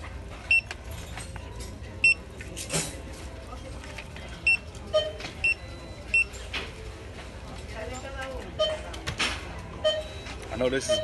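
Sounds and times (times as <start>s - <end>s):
barcode scanner beeping: 0.5s - 0.7s, 4.5s - 6.4s, 8.6s - 8.9s, 9.8s - 11.0s.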